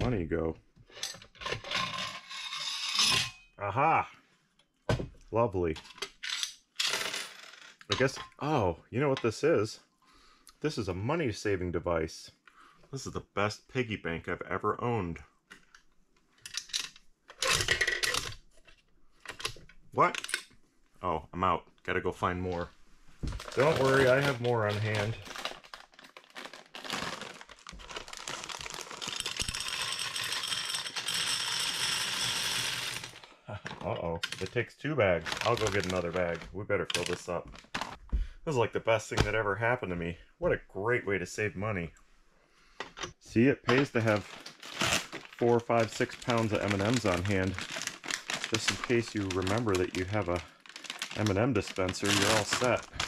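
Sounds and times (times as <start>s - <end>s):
candies clattering into glass: 23.4s - 25.4s, 26.3s - 33.2s, 43.7s - 53.0s
coins clinking in dispenser: 29.2s - 33.1s.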